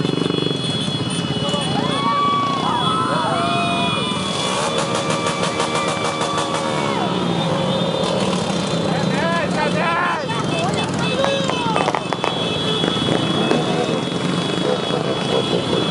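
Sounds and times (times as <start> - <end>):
motorcycle revving: 0.0 - 15.9
small motorcycles running slowly: 0.0 - 15.9
people shouting and cheering: 1.4 - 7.5, 9.0 - 12.0.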